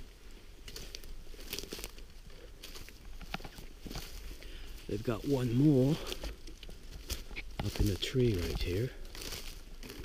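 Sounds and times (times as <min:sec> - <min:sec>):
footsteps crunching through dry leaves: 0:00.0 - 0:10.0.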